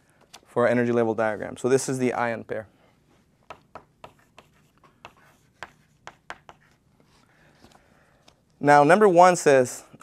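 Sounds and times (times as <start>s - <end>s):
chalk writing on blackboard: 3.4s - 7.2s.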